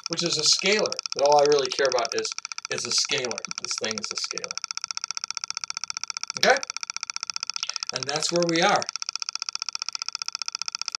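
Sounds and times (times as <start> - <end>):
rapid even ticking: 0.0 - 11.0.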